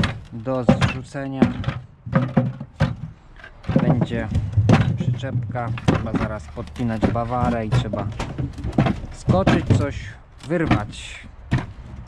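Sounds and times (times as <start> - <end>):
turnips dropped into plastic bucket: 0.0 - 11.6
man speaking: 0.3 - 1.6, 3.7 - 8.2, 9.1 - 11.4.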